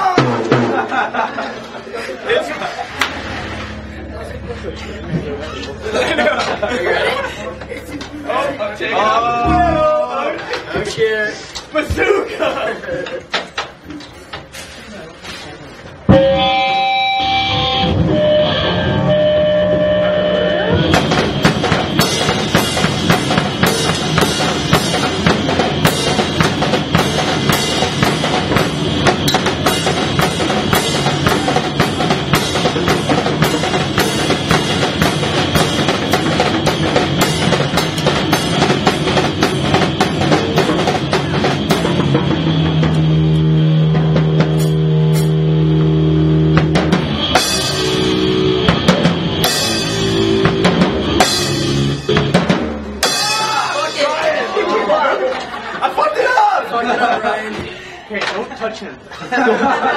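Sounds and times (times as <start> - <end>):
punk band playing live: 0.0 - 11.0, 15.9 - 57.9
fast drumming with cymbals: 20.7 - 45.7, 46.3 - 54.5.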